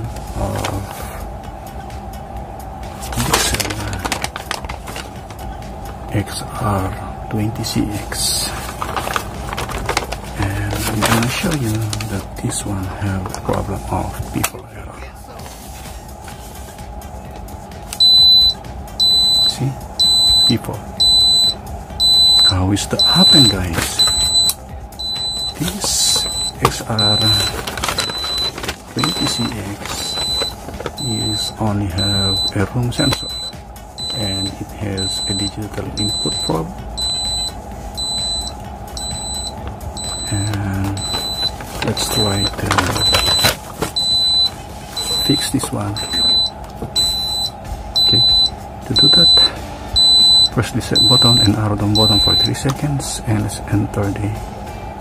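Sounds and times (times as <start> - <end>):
high-pitched alarm beeps: 18.0 - 52.6.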